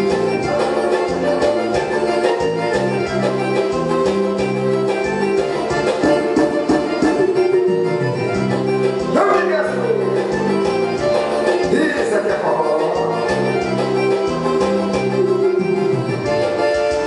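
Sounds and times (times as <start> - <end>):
electronic keyboard music: 0.0 - 17.0.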